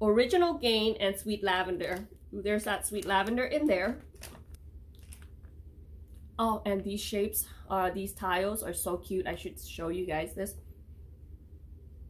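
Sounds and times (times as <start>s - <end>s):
wax tile packaging clicks and crackles: 1.8s - 5.5s.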